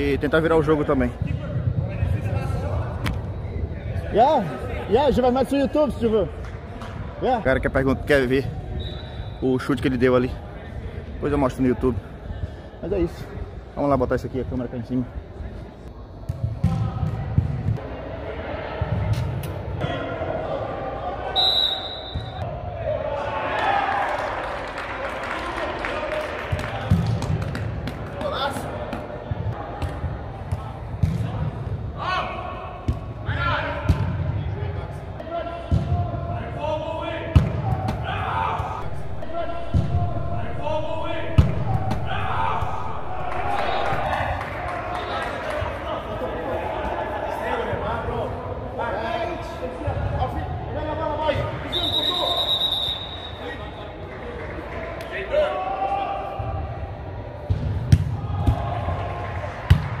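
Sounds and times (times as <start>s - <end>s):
short whistle blast: 21.4s - 22.4s, 51.7s - 53.5s
players shouting: 35.2s - 48.2s.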